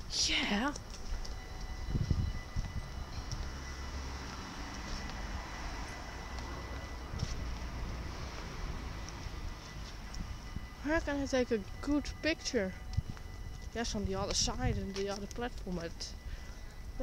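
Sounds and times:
train low rumble: 0.0 - 17.0
high-pitched whine: 0.3 - 17.0.

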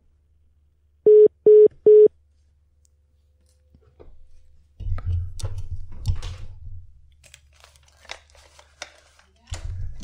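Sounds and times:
short beeps: 1.1 - 2.1.

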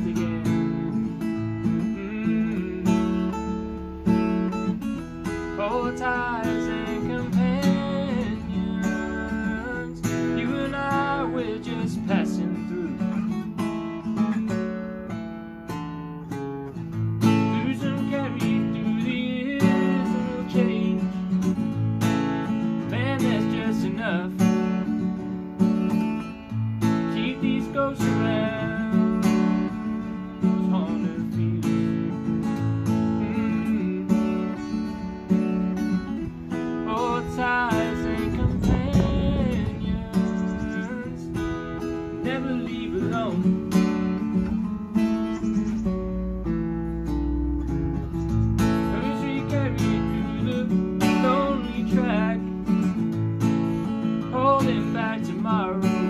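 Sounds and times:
man singing: 0.0 - 14.5, 16.9 - 25.3, 26.0 - 44.4, 48.5 - 53.0, 53.9 - 56.0
acoustic guitar playing: 0.0 - 56.0.

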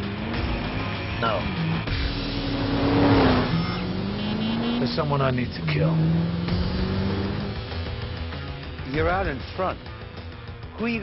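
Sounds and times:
car engine revving: 0.0 - 10.3.

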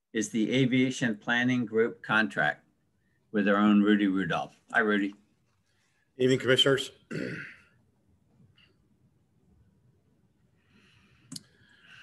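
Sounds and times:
man speaking: 0.2 - 2.7, 3.3 - 5.3, 6.2 - 7.3
man clearing his throat: 7.1 - 7.8.

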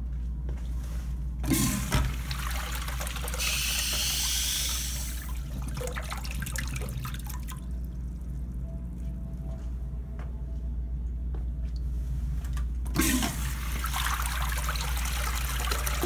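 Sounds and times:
urinal flushing water rush: 1.4 - 8.5, 12.9 - 16.0.

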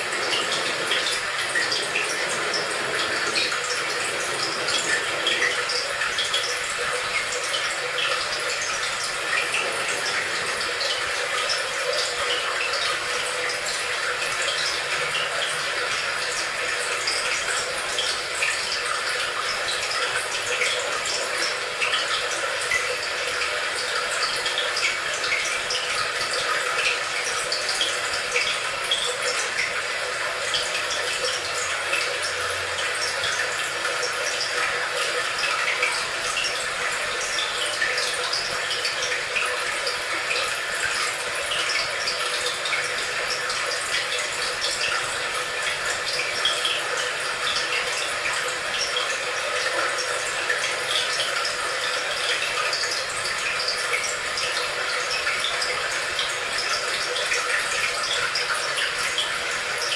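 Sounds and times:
running splashing water: 0.0 - 59.9
small drip-like ticks: 0.0 - 59.9.

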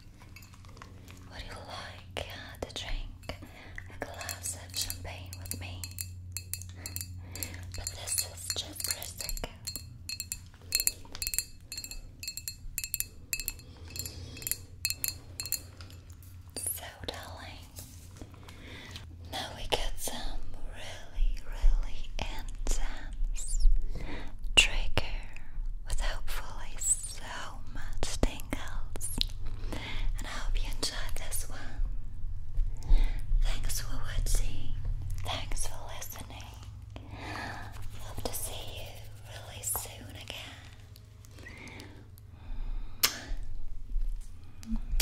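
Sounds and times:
woman whispering: 1.3 - 6.0, 7.6 - 9.7, 16.6 - 17.8, 24.6 - 29.2, 33.4 - 36.7, 38.0 - 40.8.

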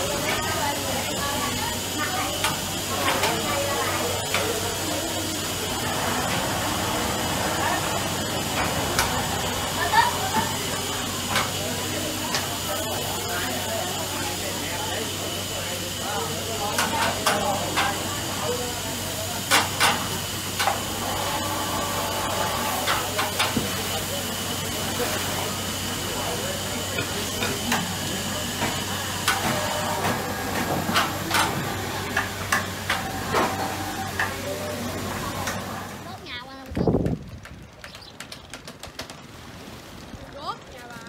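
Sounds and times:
steam hissing from vats: 0.0 - 37.0, 39.3 - 41.0
wooden handcart rattling: 36.4 - 41.0.

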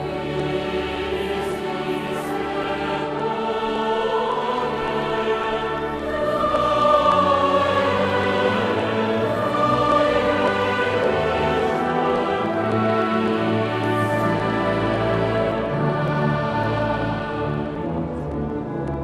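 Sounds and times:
choir singing: 0.0 - 19.0
instrumental accompaniment: 0.0 - 19.0.

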